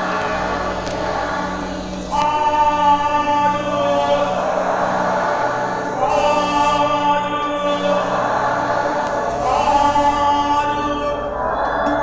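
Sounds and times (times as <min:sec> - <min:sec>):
group singing devotional song: 0:00.0 - 0:12.0
musical accompaniment: 0:00.0 - 0:12.0.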